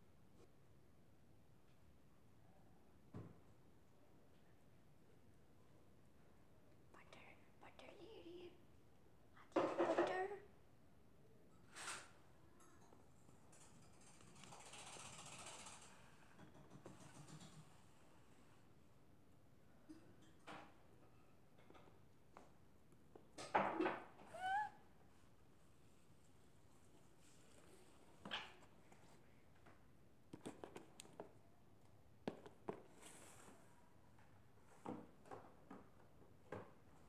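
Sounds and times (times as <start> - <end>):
faint whispering voice: 6.8 - 8.7, 24.3 - 24.8.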